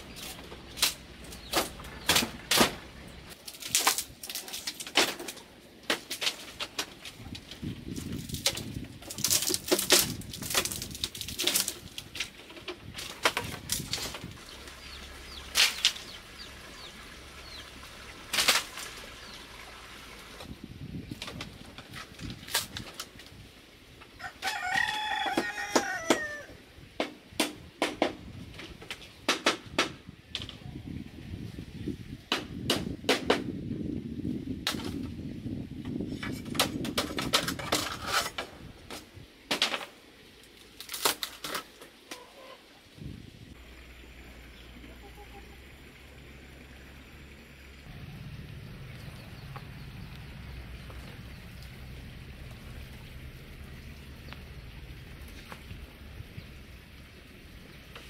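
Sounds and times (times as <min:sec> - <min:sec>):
rooster crowing: 0:24.2 - 0:26.6
bamboo slats knocking: 0:27.0 - 0:30.6, 0:32.3 - 0:33.5.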